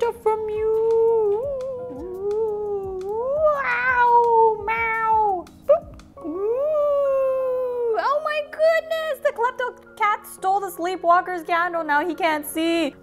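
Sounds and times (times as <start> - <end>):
woman imitating cat meows: 0.8 - 8.0.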